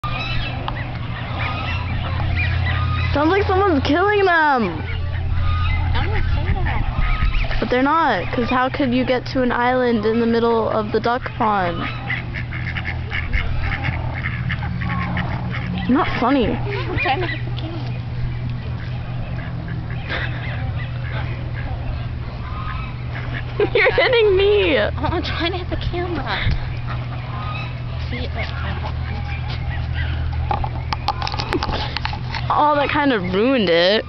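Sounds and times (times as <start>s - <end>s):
ducks quacking: 0.0s - 34.0s
steady low hum: 0.0s - 34.0s
waterfowl squawking and honking: 0.0s - 34.0s.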